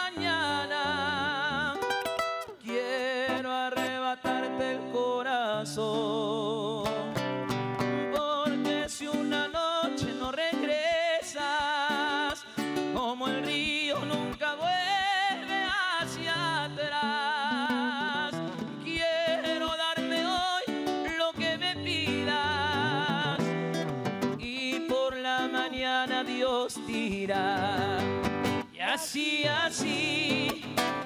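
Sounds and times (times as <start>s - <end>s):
man singing with vibrato: 0.0s - 31.0s
nylon-string guitar: 0.0s - 31.0s.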